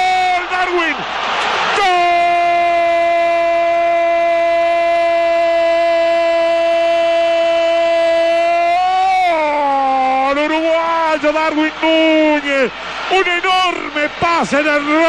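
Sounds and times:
commentator shouting goal cry: 0.0s - 15.0s.

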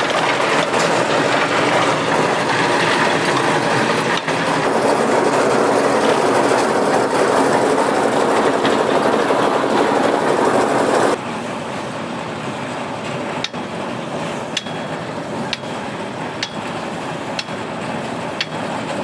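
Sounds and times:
concrete mixer running: 0.0s - 19.0s.

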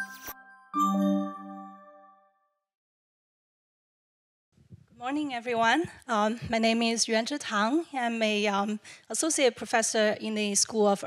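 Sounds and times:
bell-like chord ringing: 0.0s - 2.4s.

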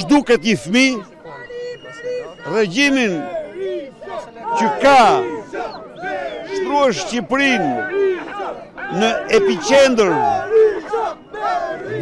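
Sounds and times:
protest crowd: 0.0s - 12.0s
man talking loudly: 2.5s - 3.3s, 4.5s - 5.3s, 6.5s - 7.8s, 8.9s - 10.4s.

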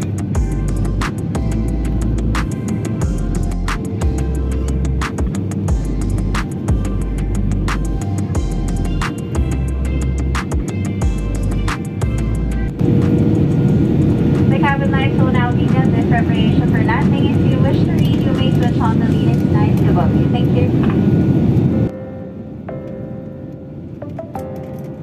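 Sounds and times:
airliner cabin rumble: 0.0s - 22.6s
background music: 0.0s - 25.0s
person talking: 14.5s - 20.8s.

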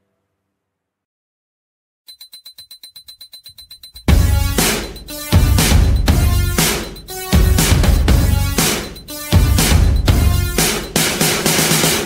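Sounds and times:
rapid high-pitched beeping: 2.1s - 11.8s.

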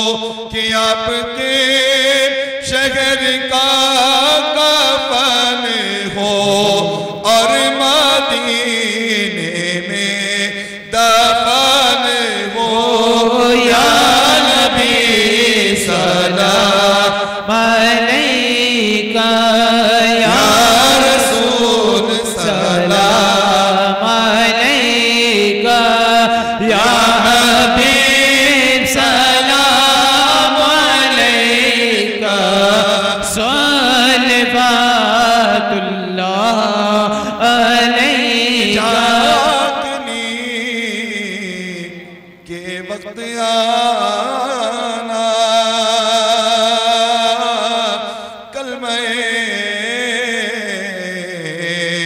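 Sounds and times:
men chanting through a microphone: 0.0s - 52.0s.

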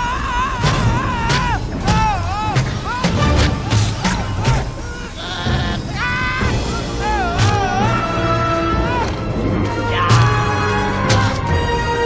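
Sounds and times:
film soundtrack music: 0.0s - 12.0s.

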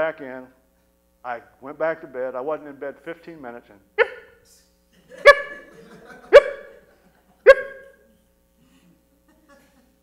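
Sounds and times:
man imitating dog barks: 4.0s - 4.4s, 5.2s - 5.7s, 6.3s - 6.8s, 7.5s - 8.0s.

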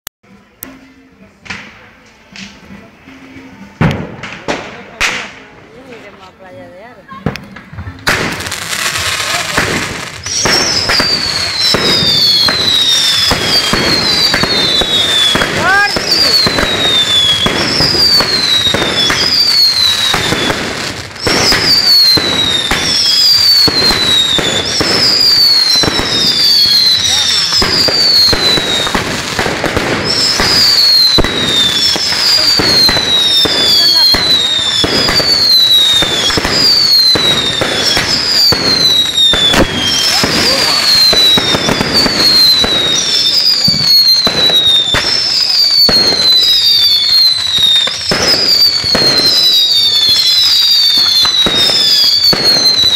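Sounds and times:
fireworks crackling and popping: 0.4s - 52.9s
firework whistles falling in pitch: 8.3s - 52.9s.

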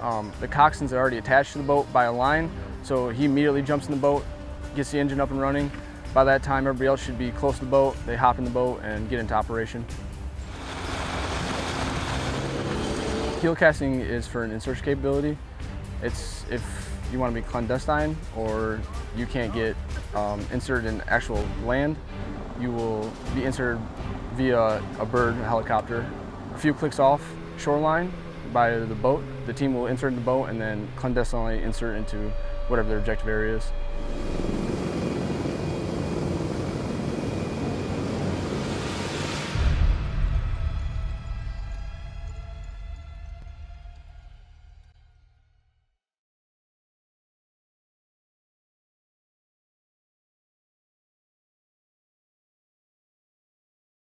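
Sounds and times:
outboard motor running: 10.4s - 13.6s
rushing water: 10.5s - 13.4s
deep bass music note: 19.3s - 35.4s
wind: 33.6s - 39.6s.

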